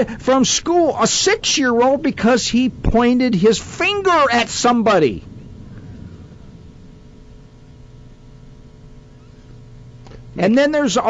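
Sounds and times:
faint background hiss: 0:00.0 - 0:11.0
low electrical hum: 0:00.0 - 0:11.0.

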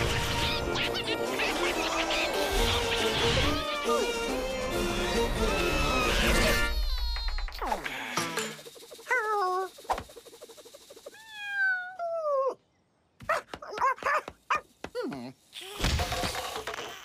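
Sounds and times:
cartoon dog whimpering and yelping: 0:05.5 - 0:07.8, 0:09.0 - 0:09.8, 0:11.0 - 0:15.4.

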